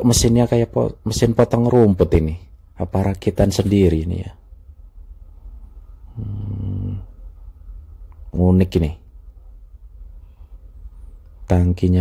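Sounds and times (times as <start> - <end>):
man humming: 6.1 - 7.2.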